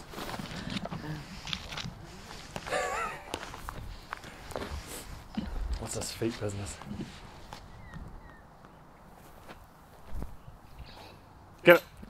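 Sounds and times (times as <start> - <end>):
footsteps on dirt: 0.0 - 10.5.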